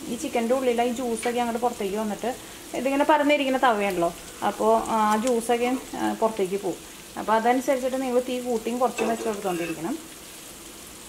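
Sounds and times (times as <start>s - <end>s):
woman talking: 0.0s - 10.0s
chicken sizzling in oil: 0.0s - 11.0s
spatula scraping: 9.0s - 9.9s.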